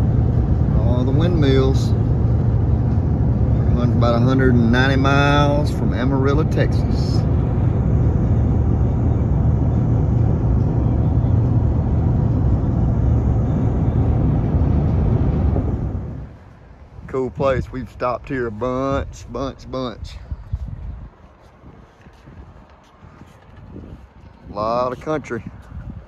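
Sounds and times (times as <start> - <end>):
truck road and engine rumble: 0.0 - 26.0.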